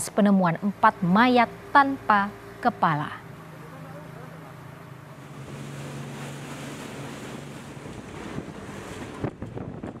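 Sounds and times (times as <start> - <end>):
boat engine hum: 0.0 - 10.0
rush of wind and water: 3.2 - 10.0
wind buffeting microphone: 5.3 - 10.0.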